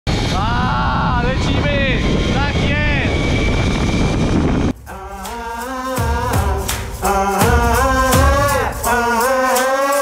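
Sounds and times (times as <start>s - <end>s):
wind rushing over microphone: 0.1s - 8.6s
music: 4.8s - 10.0s.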